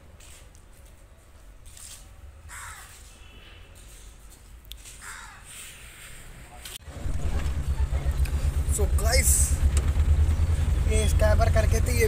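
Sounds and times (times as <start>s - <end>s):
vehicle engine idling: 6.8s - 12.0s.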